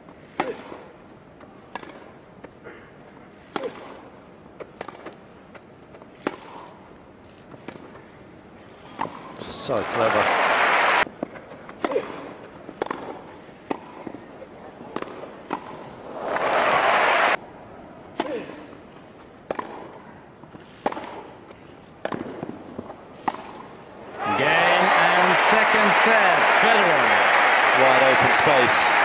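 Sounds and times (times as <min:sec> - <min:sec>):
tennis ball struck by racquets: 0:01.7 - 0:02.1, 0:11.8 - 0:14.2, 0:19.4 - 0:20.0, 0:20.8 - 0:21.3, 0:22.0 - 0:23.7
crowd applause: 0:09.8 - 0:11.0, 0:16.2 - 0:17.4, 0:24.1 - 0:29.0.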